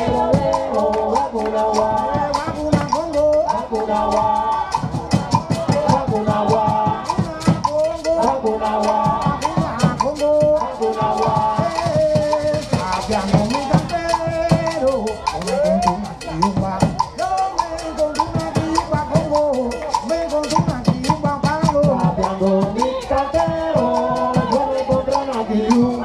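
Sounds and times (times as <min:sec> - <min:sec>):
conga drums and hand percussion: 0:00.0 - 0:26.0
people singing: 0:00.0 - 0:26.0.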